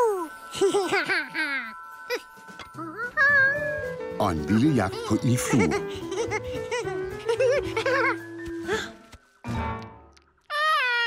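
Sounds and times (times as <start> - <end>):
cartoon monkey crying: 10.5 - 11.0.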